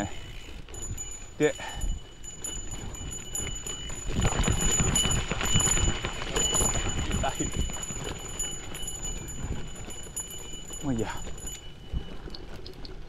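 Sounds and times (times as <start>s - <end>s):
bike rattling over bumps: 0.0s - 13.0s
bike tyre rumble: 0.0s - 13.0s.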